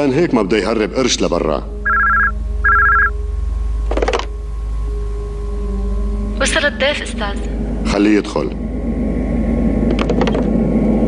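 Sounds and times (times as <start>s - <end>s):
faint steady drone: 0.0s - 11.0s
electronic telephone ringing: 1.9s - 3.2s.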